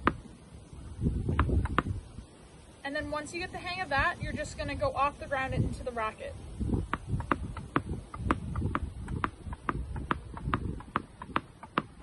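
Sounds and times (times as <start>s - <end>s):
tennis ball bouncing on asphalt: 0.0s - 0.3s, 1.2s - 2.0s, 6.7s - 12.0s
ball hitting racket strings: 6.9s - 12.0s.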